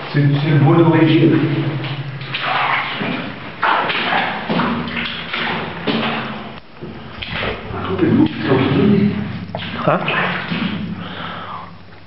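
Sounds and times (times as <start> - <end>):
thuds: 1.8 - 7.6.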